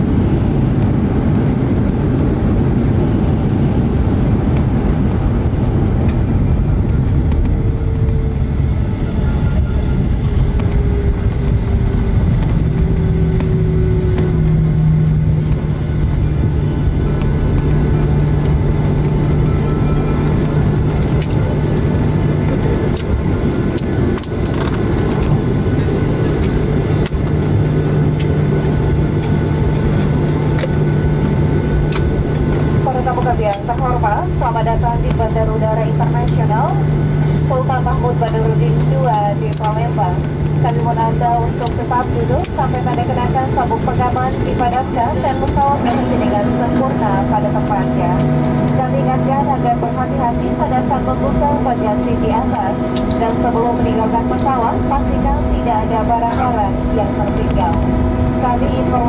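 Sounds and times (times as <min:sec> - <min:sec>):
jet engine whine: 0:00.0 - 0:59.0
wheels rumbling on runway: 0:00.0 - 0:59.0.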